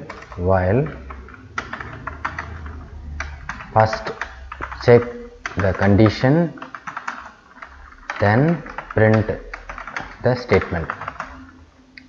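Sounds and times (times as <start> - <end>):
keyboard typing: 0.0 - 11.6.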